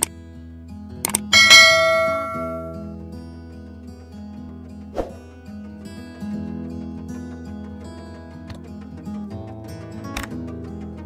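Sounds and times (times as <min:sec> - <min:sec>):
background music: 0:00.0 - 0:11.0
notification bell ding: 0:01.4 - 0:02.8.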